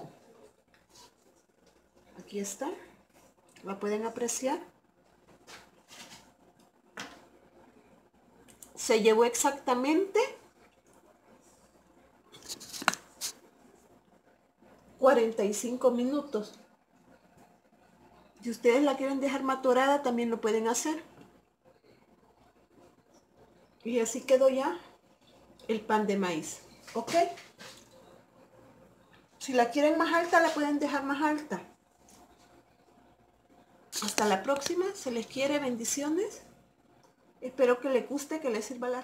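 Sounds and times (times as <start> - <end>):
woman speaking: 2.2 - 2.9, 3.6 - 4.7, 8.7 - 10.5, 15.0 - 16.6, 18.4 - 21.2, 23.8 - 24.9, 25.7 - 27.5, 29.4 - 31.8, 34.0 - 36.5, 37.4 - 39.0.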